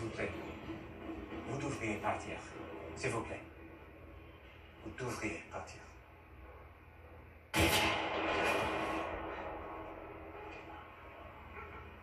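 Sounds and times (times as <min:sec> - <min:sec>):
loud soundtrack hit: 0:07.5 - 0:11.9.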